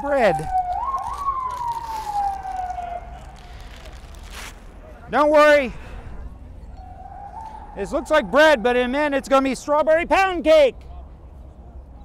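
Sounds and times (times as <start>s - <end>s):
distant emergency siren wailing: 0.0s - 10.1s.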